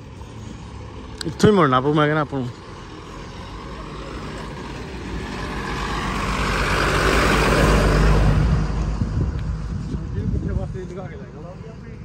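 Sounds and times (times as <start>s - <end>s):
vehicle passing by: 0.0s - 12.0s.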